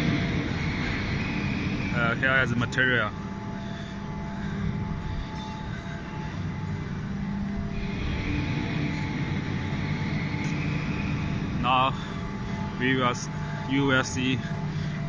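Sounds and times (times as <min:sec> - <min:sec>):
faint steady tones: 0:00.0 - 0:15.0
industrial machinery hum: 0:00.0 - 0:15.0.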